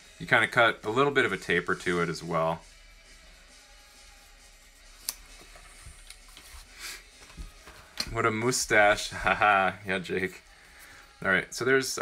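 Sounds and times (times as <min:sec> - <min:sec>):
scissors snipping foam: 0:05.0 - 0:05.3
rustly scissors cut: 0:05.0 - 0:06.4.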